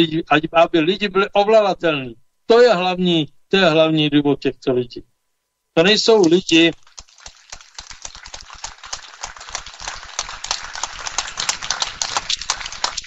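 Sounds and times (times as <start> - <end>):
audience applauding: 6.2 - 13.0.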